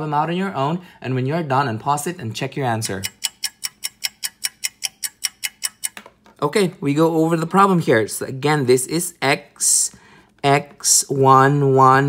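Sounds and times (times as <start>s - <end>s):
clock ticking rapidly: 2.8s - 6.0s.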